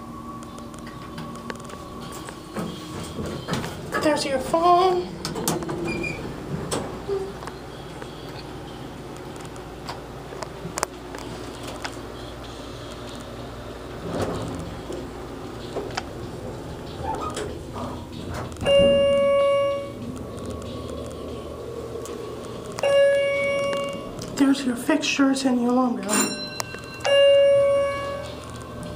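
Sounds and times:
elevator humming: 0.0 - 28.9
electronic chime tones: 18.6 - 20.0, 22.8 - 24.2, 26.1 - 28.8.

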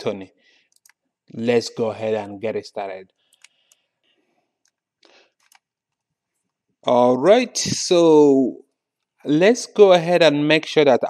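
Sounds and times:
computer mouse clicks: 0.7 - 1.0, 3.3 - 3.9, 5.4 - 6.5.

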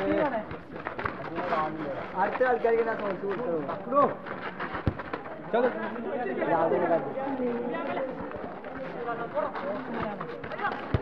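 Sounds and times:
people calling out and chattering: 0.0 - 11.0.

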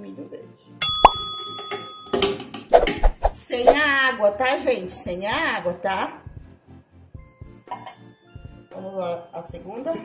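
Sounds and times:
bell-like ding: 0.8 - 2.5.

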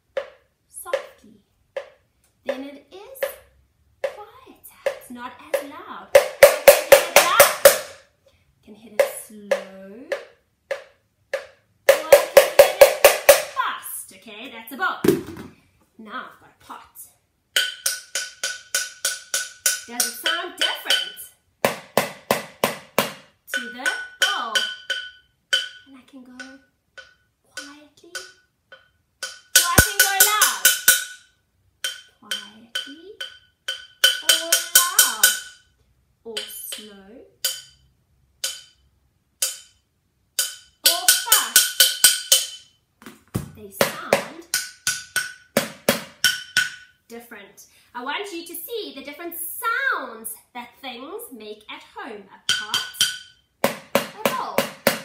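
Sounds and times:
wooden spoon striking metal pot: 4.8 - 8.0, 9.0 - 13.6, 17.6 - 35.7, 36.3 - 42.8, 43.8 - 47.0, 52.4 - 55.0.

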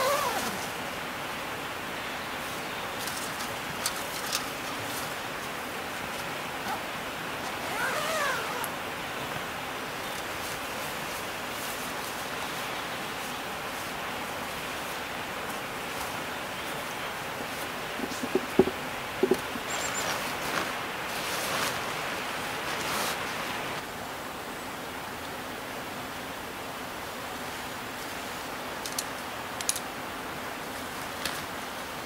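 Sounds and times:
tent fabric rustling: 0.0 - 0.8, 2.4 - 6.8, 7.4 - 8.8, 10.1 - 23.8
forest ambience hiss: 0.0 - 32.0.

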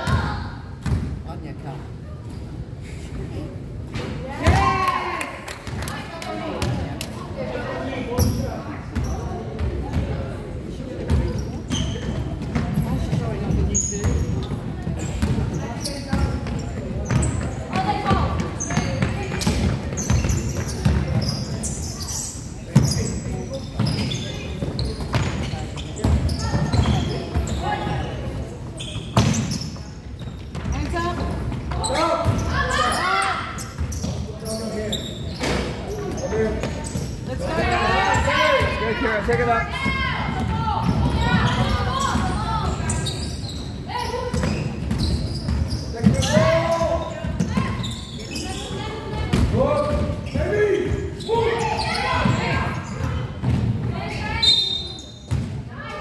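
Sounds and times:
sneaker squeaks: 8.0 - 10.4, 11.0 - 56.0.

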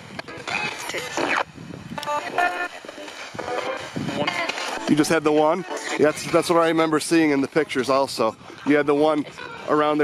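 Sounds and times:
radio static bursts: 0.0 - 10.0
broadcast music fragments: 0.1 - 7.6
clipped broadcast voices: 0.1 - 10.0.

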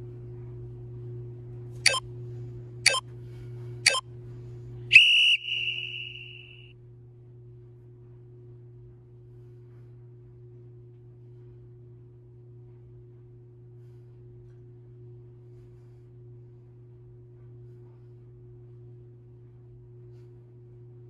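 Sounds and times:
low steady hum: 0.0 - 21.0
long final beep: 4.9 - 6.7.

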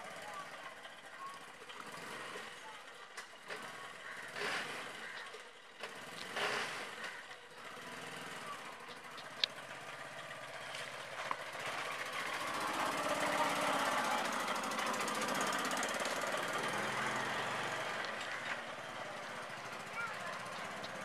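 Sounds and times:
small engine chugging: 0.0 - 21.0.

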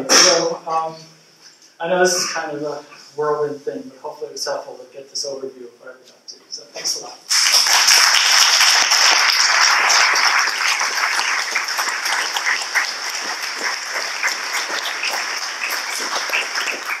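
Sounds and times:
audience applauding: 7.3 - 17.0.

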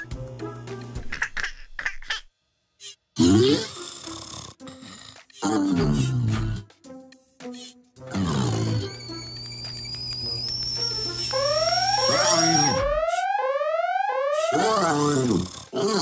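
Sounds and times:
cartoon music: 10.2 - 15.5
robot wordless vocal sounds: 14.4 - 16.0.

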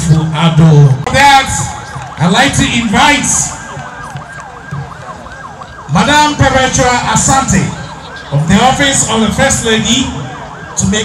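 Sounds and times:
yelping siren: 1.0 - 11.0.

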